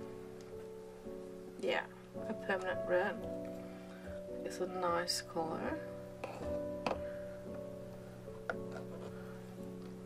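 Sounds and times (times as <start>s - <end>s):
soft guitar-like background music: 0.0s - 10.0s.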